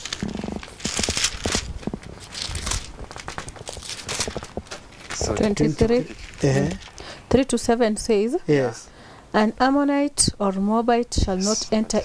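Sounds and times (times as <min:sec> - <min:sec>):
thin pages rustling: 0:00.0 - 0:07.1.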